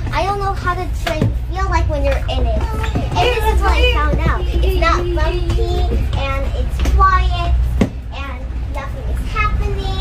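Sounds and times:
child talking and singing: 0:00.0 - 0:10.0
train car low rumble: 0:00.0 - 0:10.0.

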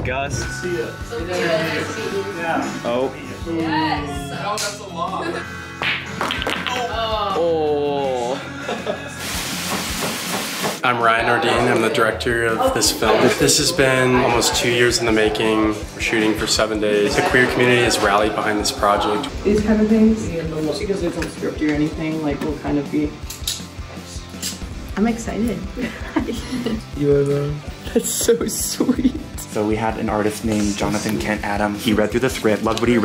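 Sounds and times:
background music: 0:00.0 - 0:33.0
food sizzling in frying pan: 0:09.2 - 0:10.8.

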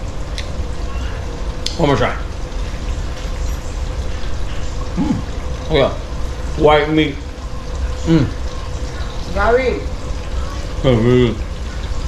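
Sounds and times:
steady low background hum: 0:00.0 - 0:12.0
man humming mmm: 0:05.0 - 0:05.3, 0:08.1 - 0:08.4.

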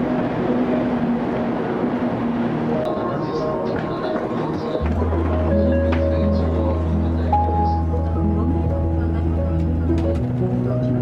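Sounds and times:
train pulling into station: 0:00.0 - 0:11.0.

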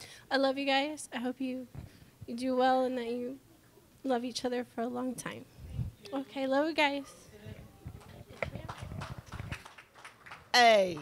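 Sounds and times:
microphone handling knocks and thumps: 0:07.4 - 0:09.6.

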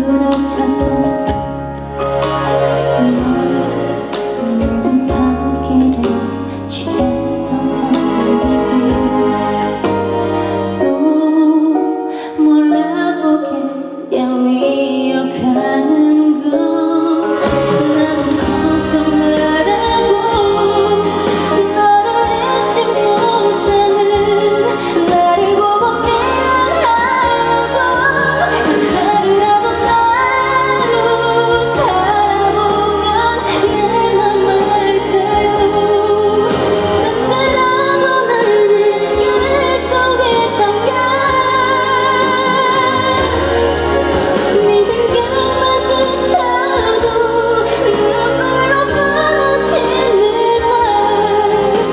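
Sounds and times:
band accompaniment: 0:00.0 - 0:12.2, 0:16.4 - 0:51.9
woman singing into microphone: 0:00.0 - 0:51.9.

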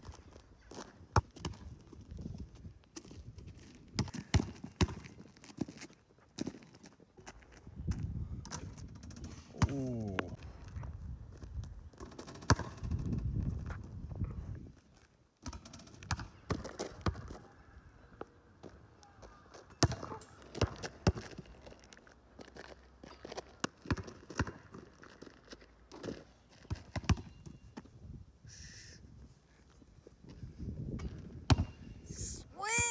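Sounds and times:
basketball bouncing on asphalt: 0:00.0 - 0:02.4, 0:03.0 - 0:09.7, 0:12.0 - 0:13.8, 0:15.4 - 0:17.4, 0:19.6 - 0:21.7, 0:23.3 - 0:25.3, 0:25.9 - 0:27.9, 0:31.0 - 0:31.8.

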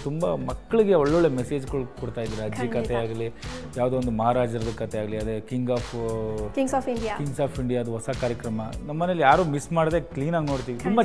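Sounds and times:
background music: 0:00.0 - 0:11.0
person speaking: 0:02.1 - 0:04.2, 0:10.5 - 0:11.0.

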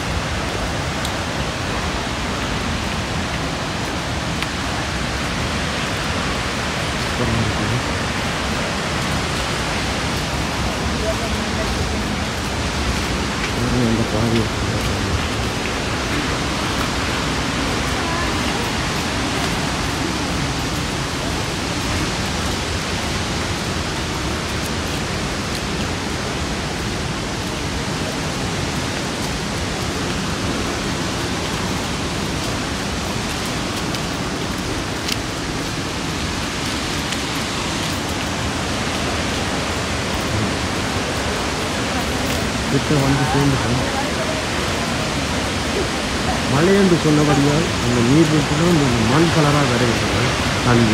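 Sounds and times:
waterfall rushing: 0:00.0 - 0:50.9.

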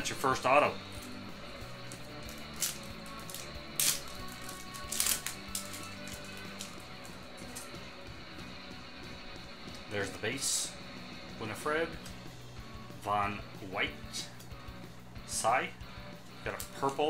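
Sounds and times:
soft background music: 0:00.0 - 0:17.0
trading cards rustling: 0:00.1 - 0:08.0, 0:16.2 - 0:17.0.

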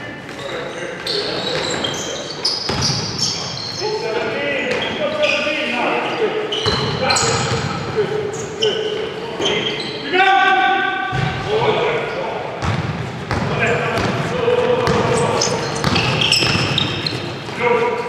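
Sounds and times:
shoes squeaking on court: 0:00.2 - 0:10.1, 0:12.6 - 0:18.0
basketball bouncing on floor: 0:15.8 - 0:17.1.

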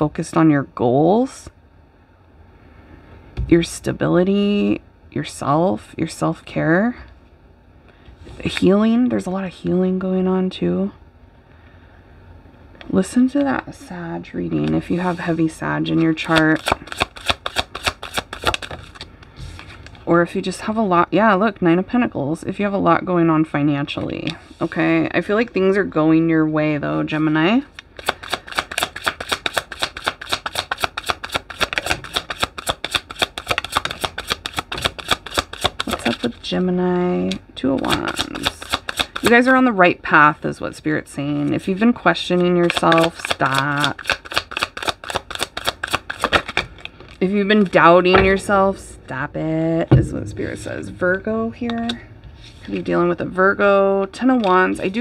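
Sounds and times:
cards being shuffled: 0:16.1 - 0:20.0, 0:28.0 - 0:36.3, 0:37.8 - 0:39.4, 0:42.6 - 0:47.8.

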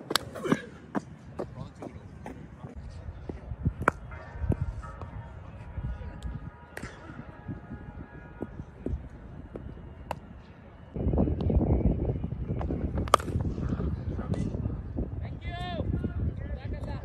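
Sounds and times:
faint music: 0:00.0 - 0:17.0.

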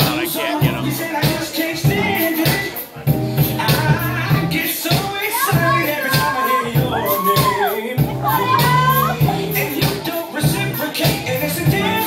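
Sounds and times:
dance music with steady beat: 0:00.0 - 0:12.0.

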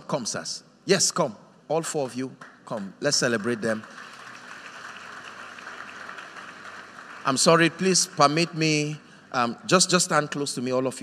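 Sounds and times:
audience applause: 0:02.7 - 0:09.0.

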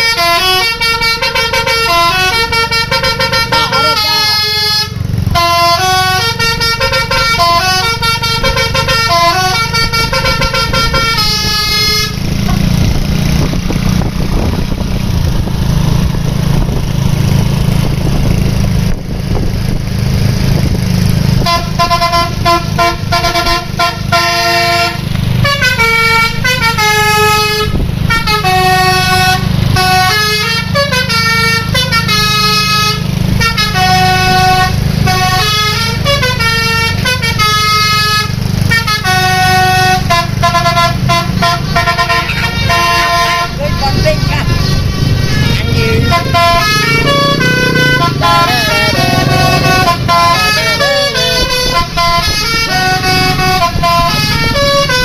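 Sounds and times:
multi-tone air horn tune: 0:00.0 - 0:12.8, 0:21.4 - 0:55.0
diesel engine rumble: 0:00.0 - 0:55.0.

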